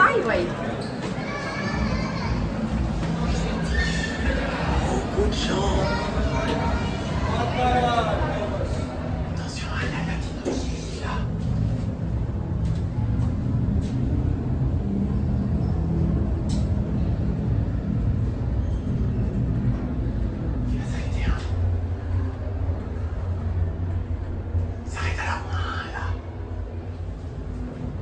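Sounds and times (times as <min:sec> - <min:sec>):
elevator hum and rumble: 0:00.0 - 0:28.0.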